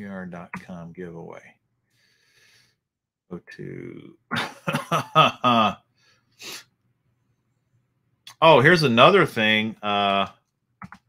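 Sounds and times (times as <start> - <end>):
short sharp breath: 1.8 - 2.8.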